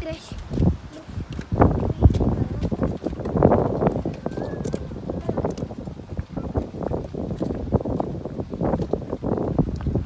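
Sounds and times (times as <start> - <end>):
footsteps on wooden boards: 0.0 - 10.0.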